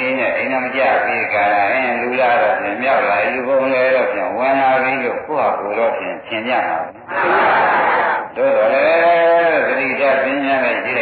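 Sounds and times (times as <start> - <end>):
man intoning a sermon: 0.0 - 7.0, 8.4 - 11.0.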